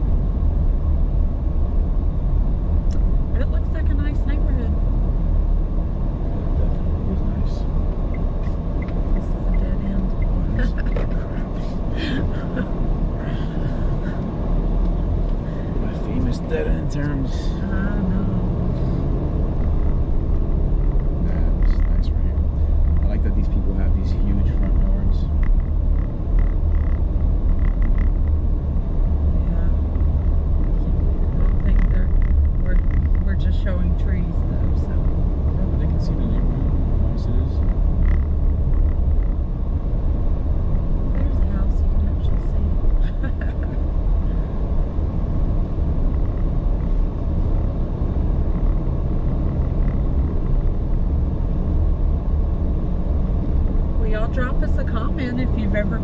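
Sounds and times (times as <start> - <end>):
car driving rumble: 0.0 - 56.0.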